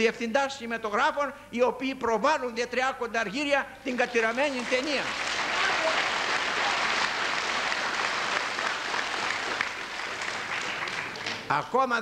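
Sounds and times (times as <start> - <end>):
audience applauding: 4.2 - 11.5.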